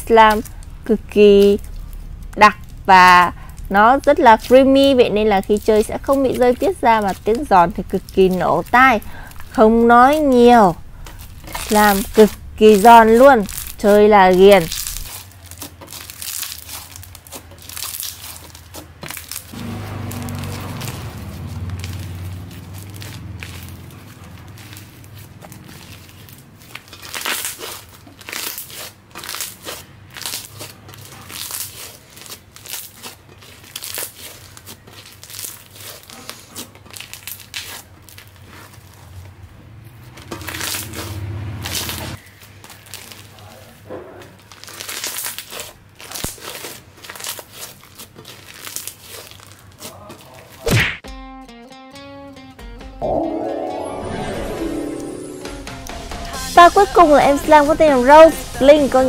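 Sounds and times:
slime crackling and popping: 0.0s - 39.1s, 40.3s - 43.6s, 44.2s - 51.0s
low muffled rumble: 0.4s - 8.4s, 9.0s - 15.1s.

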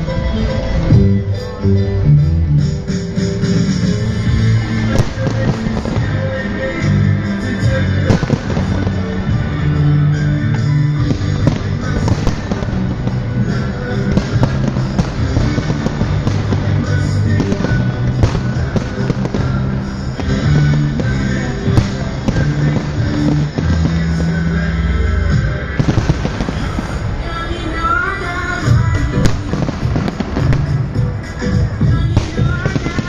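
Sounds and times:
loud music with bass notes: 0.0s - 33.0s
fireworks bursting and crackling: 2.7s - 33.0s.

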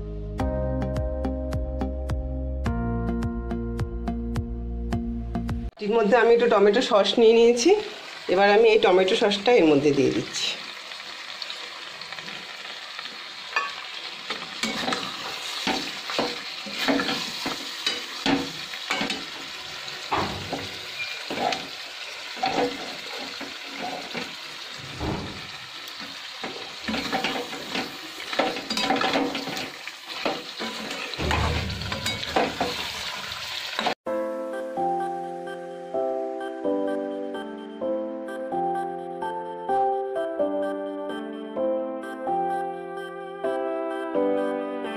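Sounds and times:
curry sizzling in a pan: 6.4s - 34.0s
metal spatula scraping a pan: 13.5s - 34.0s.

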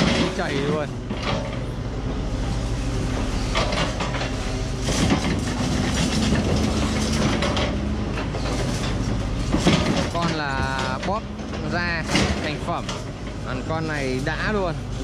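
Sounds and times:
excavator bucket pounding steel rebar: 0.0s - 1.7s, 3.5s - 14.9s
diesel engines running: 0.0s - 15.0s.

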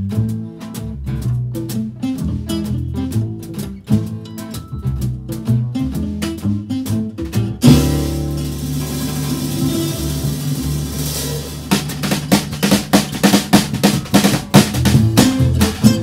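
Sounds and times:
drum roll: 0.0s - 16.0s
jazz band playing: 0.0s - 16.0s.

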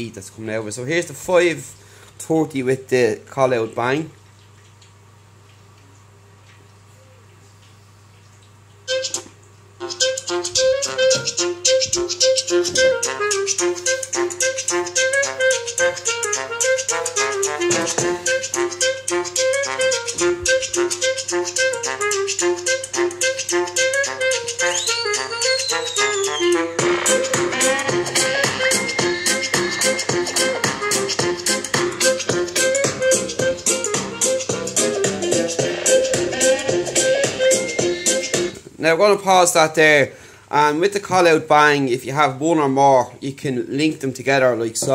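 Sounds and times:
music with fast steady beat: 8.9s - 38.6s.

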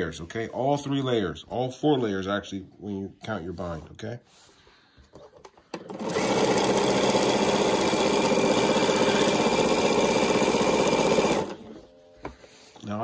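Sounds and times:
sewing machine running: 5.8s - 12.0s.

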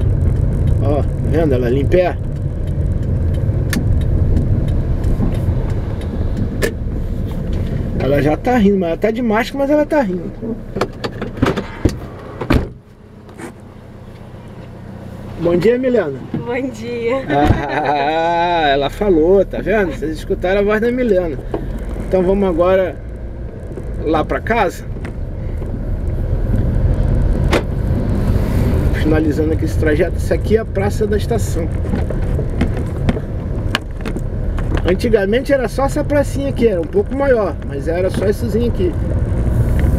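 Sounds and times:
car engine and road rumble: 0.0s - 39.9s
thud in car cabin: 10.8s - 12.8s.

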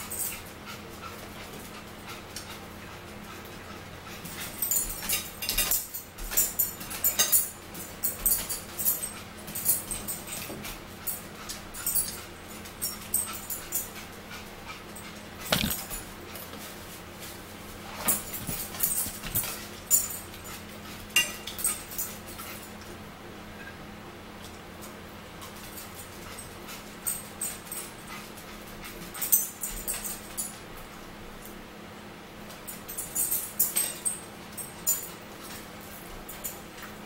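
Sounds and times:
clicks of eating food: 15.4s - 16.0s.

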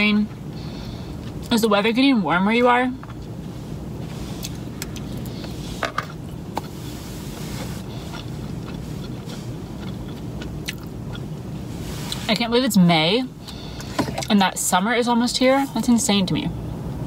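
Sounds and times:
chewing with mouth closed: 0.6s - 1.5s, 7.8s - 11.5s.

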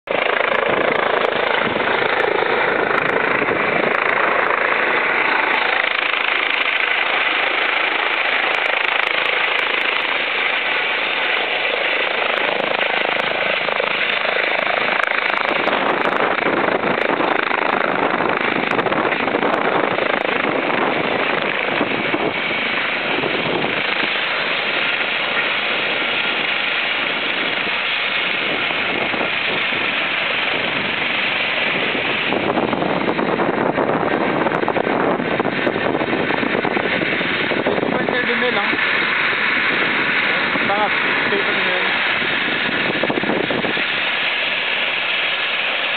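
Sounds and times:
helicopter turbine and rotor: 0.0s - 45.9s.

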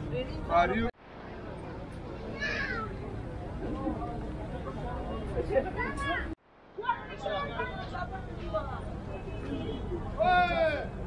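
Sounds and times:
hum of passers-by and traffic: 0.0s - 11.0s.

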